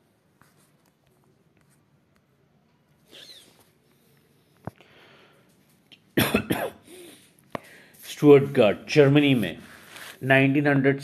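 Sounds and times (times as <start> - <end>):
person coughing: 6.2 - 7.3.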